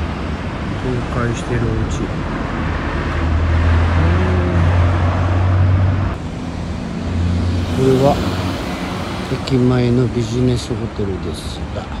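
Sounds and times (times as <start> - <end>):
car driving past: 2.7 - 10.0.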